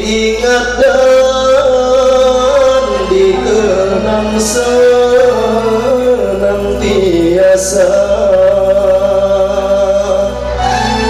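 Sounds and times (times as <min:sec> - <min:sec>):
man singing a long note: 0:00.0 - 0:11.0
violin keyboard and oud: 0:00.0 - 0:11.0.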